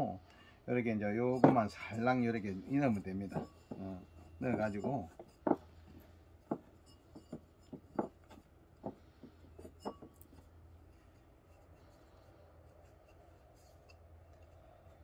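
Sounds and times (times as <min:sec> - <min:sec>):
faint low hum: 0:00.0 - 0:15.0.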